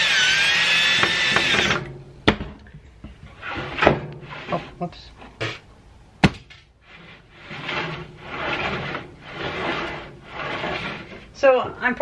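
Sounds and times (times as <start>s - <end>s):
wooden boards rubbing: 6.8s - 12.0s.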